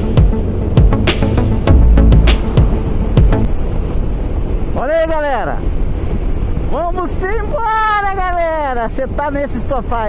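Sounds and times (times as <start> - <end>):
wind rumble: 0.0 - 10.0.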